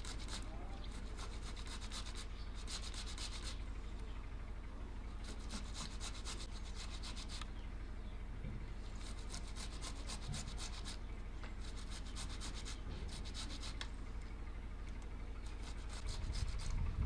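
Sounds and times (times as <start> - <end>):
tomatoes rasping on a metal grater: 0.0 - 3.6, 5.2 - 7.4, 8.9 - 11.0, 11.6 - 13.8, 15.4 - 16.8.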